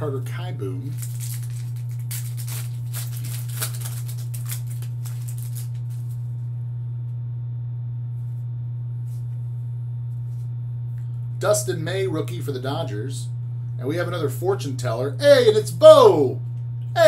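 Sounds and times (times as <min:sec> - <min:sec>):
steady low hum: 0:00.0 - 0:17.0
wrapper crinkling and tearing: 0:00.8 - 0:06.2.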